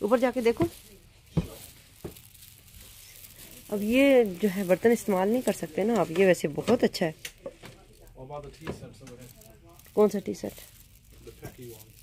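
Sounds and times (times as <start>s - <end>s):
person speaking: 0.0s - 2.0s, 2.6s - 12.0s.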